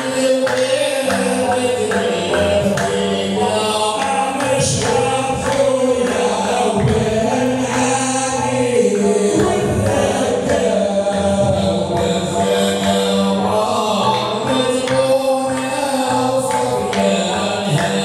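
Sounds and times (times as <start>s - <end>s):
men's voices chanting together: 0.0s - 18.0s
percussion strikes: 0.0s - 18.0s.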